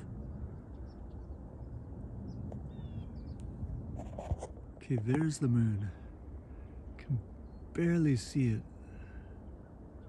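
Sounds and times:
low rumble: 0.0s - 5.0s.

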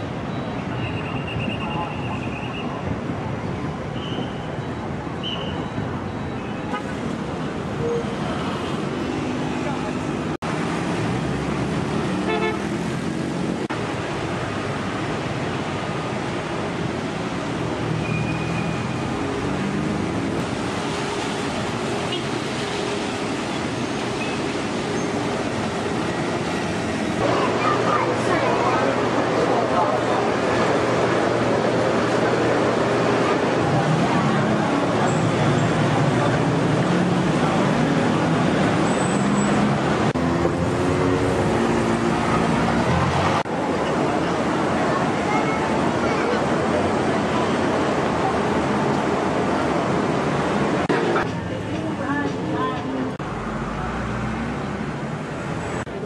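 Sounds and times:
car and scooter engines: 0.0s - 56.0s
road traffic: 0.0s - 56.0s
indistinct voices: 27.2s - 38.9s, 39.5s - 54.6s.

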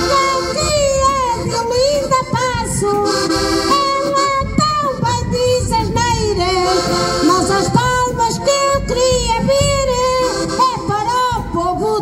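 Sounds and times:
accordions playing chords: 0.0s - 12.0s
woman singing into a microphone: 0.0s - 12.0s.

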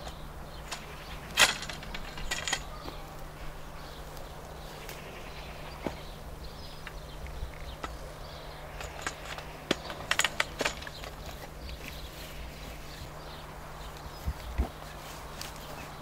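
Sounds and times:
metal hoops clicking and knocking: 0.0s - 3.1s, 6.8s - 12.1s.

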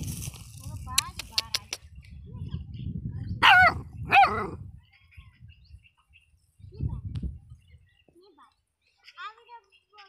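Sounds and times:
puppy yapping barks: 3.4s - 4.6s.

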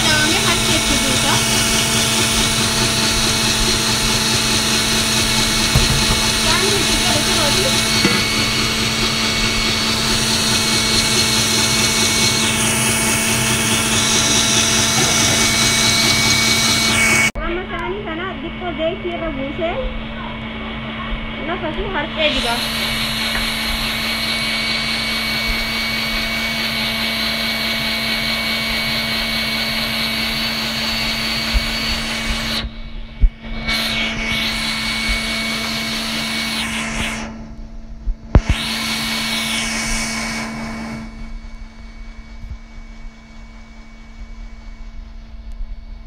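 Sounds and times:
appliance motor whirring: 0.0s - 17.9s, 20.9s - 37.6s, 38.3s - 43.6s
knocks of appliance stopping: 5.2s - 11.3s.

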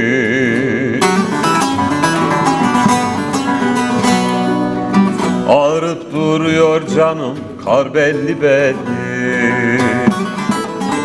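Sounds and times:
acoustic guitar: 0.0s - 11.0s
long-necked lute plucked: 0.9s - 7.6s, 8.2s - 11.0s.

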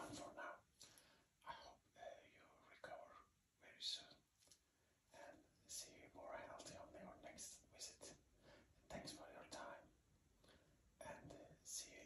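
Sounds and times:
person whispering: 0.0s - 0.7s, 1.4s - 4.2s, 5.1s - 8.2s, 8.9s - 9.9s, 11.0s - 12.0s.

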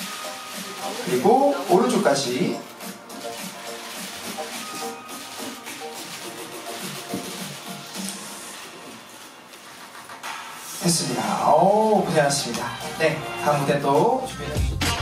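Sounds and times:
soft background music: 0.0s - 15.0s.

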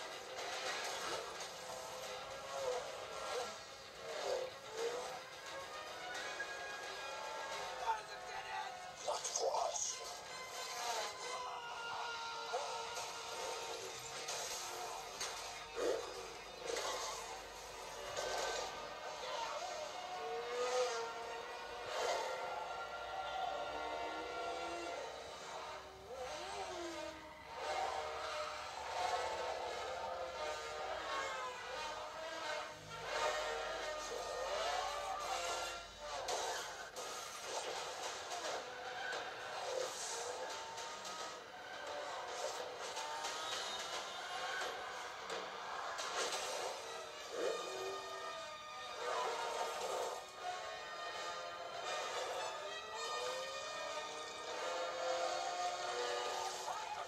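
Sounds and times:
vehicle engines revving: 0.0s - 9.0s, 10.0s - 57.0s
film score: 0.0s - 57.0s.

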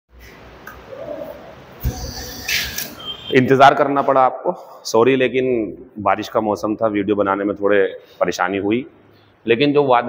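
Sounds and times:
faint bird cooing: 0.7s - 3.1s.

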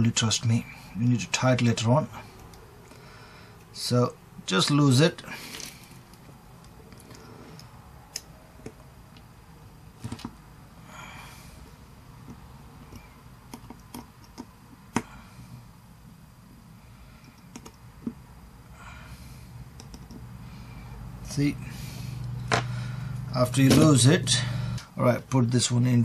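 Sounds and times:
small clicks and taps handling parts: 12.2s - 15.1s, 19.8s - 20.3s.

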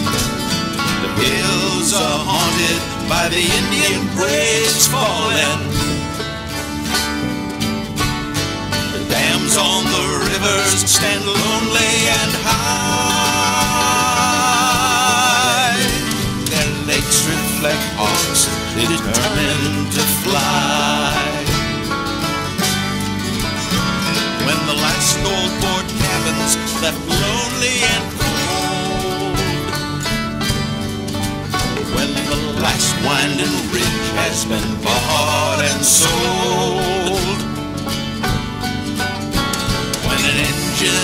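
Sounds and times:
guitar playing chords: 0.0s - 41.0s
plucked strings sustained notes: 0.0s - 41.0s
drum beat: 8.0s - 37.5s, 38.2s - 41.0s
sharp percussive hits: 27.1s - 33.2s.

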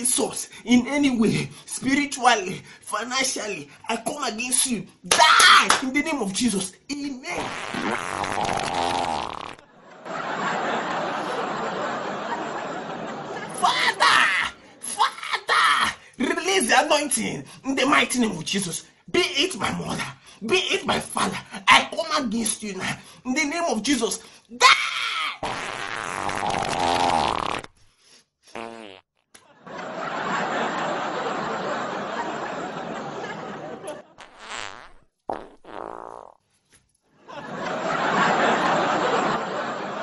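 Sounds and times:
long rippling fart: 7.4s - 9.7s, 25.4s - 27.8s, 28.6s - 29.1s, 34.2s - 36.4s.

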